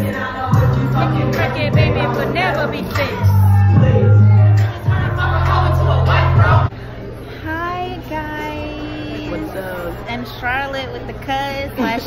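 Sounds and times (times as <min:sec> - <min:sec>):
young woman singing: 0:00.0 - 0:06.7.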